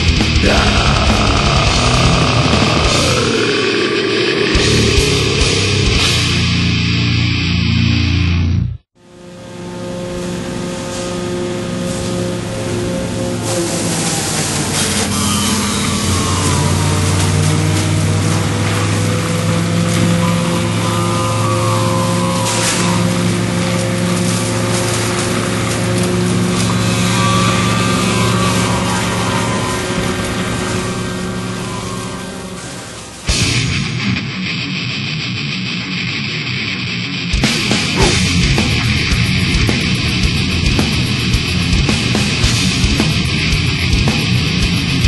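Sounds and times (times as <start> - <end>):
machine drone with hiss: 0.0 - 8.2, 9.0 - 34.8, 37.3 - 45.0
faint wavering whine: 19.8 - 33.3.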